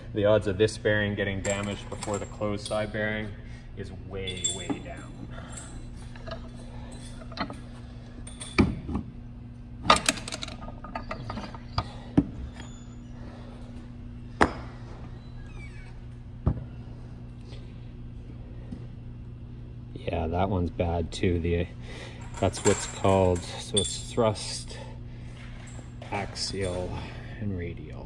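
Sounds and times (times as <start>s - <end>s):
low hum: 0.0s - 28.0s.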